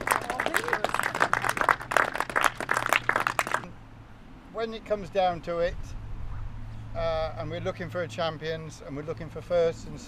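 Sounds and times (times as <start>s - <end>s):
audience applauding: 0.0s - 3.7s.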